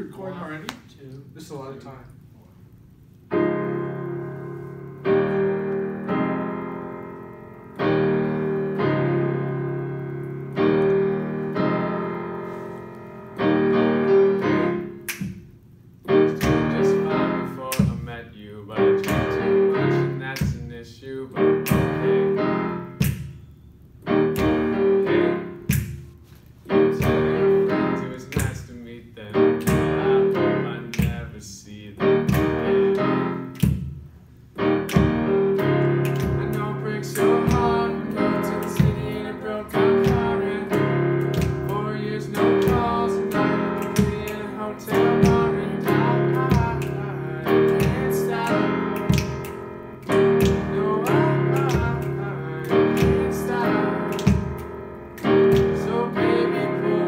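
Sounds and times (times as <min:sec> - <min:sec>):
digital piano chords: 0:03.0 - 0:57.0
sharp rhythmic clicks: 0:13.3 - 0:57.0
people singing along: 0:36.1 - 0:49.5, 0:50.1 - 0:54.6, 0:55.2 - 0:57.0.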